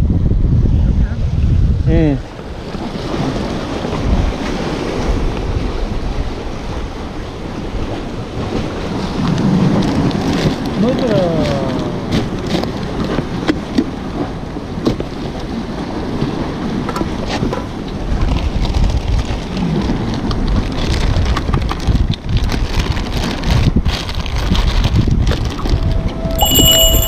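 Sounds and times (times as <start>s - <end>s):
wind buffeting microphone: 0.0s - 27.0s
sea waves washing: 2.1s - 21.4s
plastic bags rustling: 18.7s - 25.8s
music chime: 26.3s - 27.0s.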